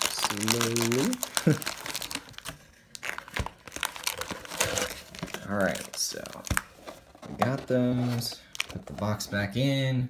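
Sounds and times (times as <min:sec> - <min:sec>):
plastic wrappers crinkling: 0:00.0 - 0:09.3.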